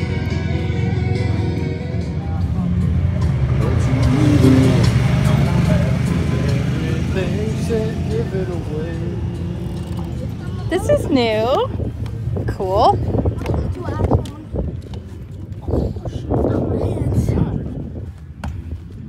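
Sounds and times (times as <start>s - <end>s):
background music: 0.0s - 13.2s
voices: 0.0s - 18.4s.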